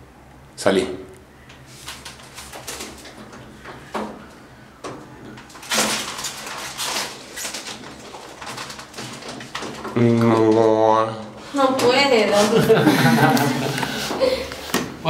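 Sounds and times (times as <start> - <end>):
foil and plastic wrapping rustling: 1.7 - 4.3, 5.0 - 12.6.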